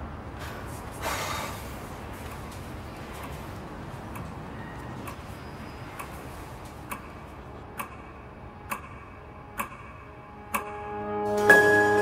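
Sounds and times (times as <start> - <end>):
clock-like ticking: 5.0 - 5.3, 6.0 - 6.2, 6.8 - 11.0.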